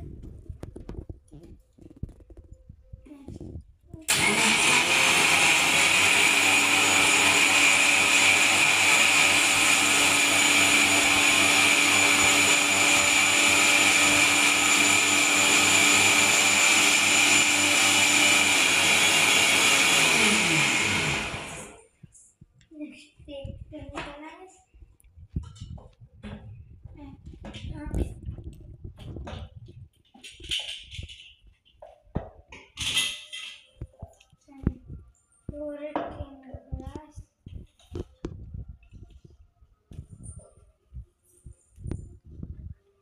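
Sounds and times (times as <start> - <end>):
mixer grinder motor running: 4.1 - 21.8.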